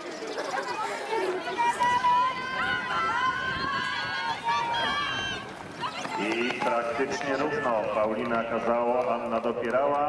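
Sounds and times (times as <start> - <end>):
spectators cheering and shouting: 0.5 - 9.9.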